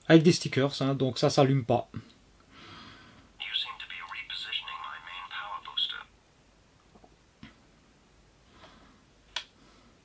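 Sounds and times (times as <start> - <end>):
tinny recorded voice: 3.4 - 6.1.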